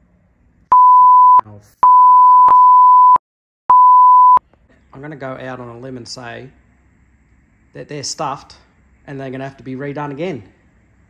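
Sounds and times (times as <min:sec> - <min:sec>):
censor bleep tone: 0:00.7 - 0:04.4.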